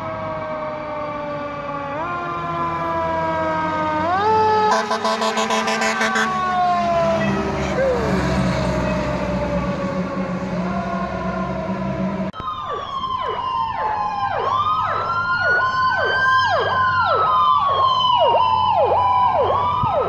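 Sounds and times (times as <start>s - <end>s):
engine hum: 0.0s - 20.0s
siren sweeping sharply downward: 0.0s - 20.0s
siren wailing: 0.0s - 20.0s.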